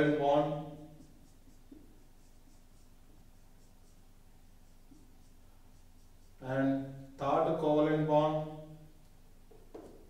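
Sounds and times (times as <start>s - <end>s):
marker pen scratching whiteboard: 0.0s - 7.8s, 8.4s - 10.0s.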